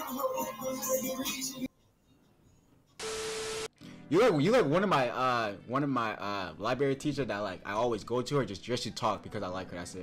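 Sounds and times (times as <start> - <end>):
static burst with steady tone: 3.0 - 3.7.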